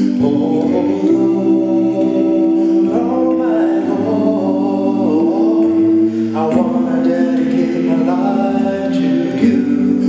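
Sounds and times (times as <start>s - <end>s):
male vocal group singing: 0.0s - 10.0s.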